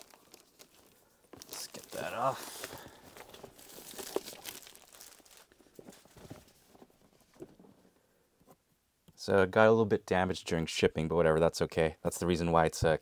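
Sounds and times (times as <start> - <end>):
plastic wrapping crinkling: 0.0 - 7.7.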